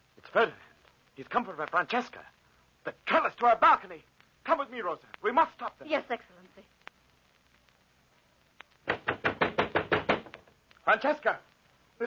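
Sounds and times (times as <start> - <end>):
rapid knocking on a door: 8.8 - 10.5.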